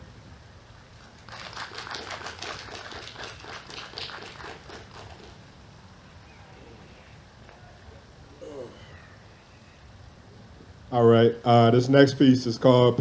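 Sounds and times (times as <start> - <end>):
small audience applauding: 1.1 - 5.4.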